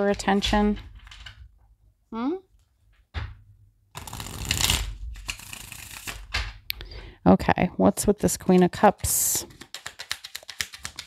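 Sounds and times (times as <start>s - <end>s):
cards shuffling: 4.0s - 6.6s, 9.4s - 11.0s.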